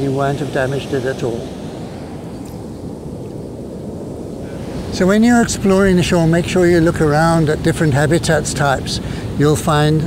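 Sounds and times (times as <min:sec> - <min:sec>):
ocean surf: 0:00.0 - 0:10.0
wind: 0:00.0 - 0:10.0.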